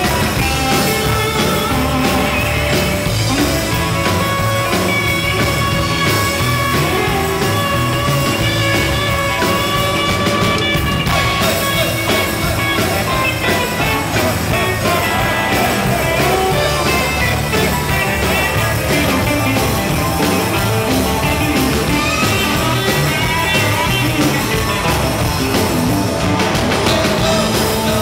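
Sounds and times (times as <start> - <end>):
electric guitar lead with bends: 0.0 - 28.0
live rock band playing: 0.0 - 28.0.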